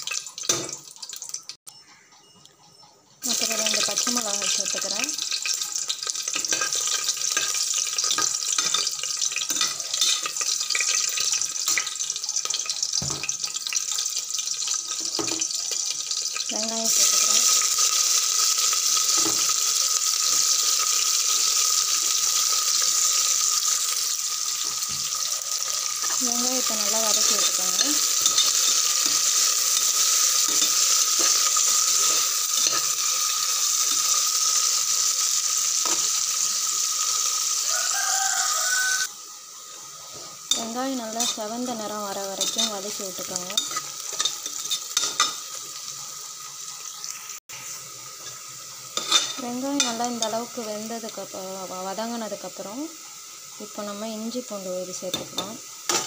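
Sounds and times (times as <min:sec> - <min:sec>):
onions sizzling loudly: 0:00.0 - 0:01.6, 0:03.2 - 0:56.0
spices frying in oil: 0:00.0 - 0:01.6, 0:03.2 - 0:56.0.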